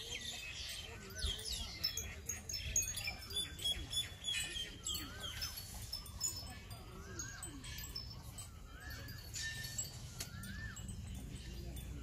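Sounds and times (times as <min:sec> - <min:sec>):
bird calls: 0:00.0 - 0:12.0
high tinkling notes: 0:00.0 - 0:12.0.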